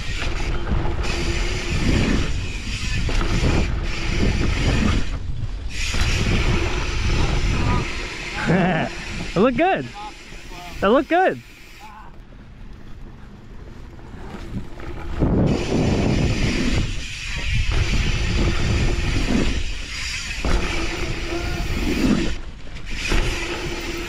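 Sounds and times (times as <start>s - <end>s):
wind on microphone: 0.0s - 9.4s, 13.0s - 24.0s
bike tyres rolling on dirt: 0.0s - 24.0s.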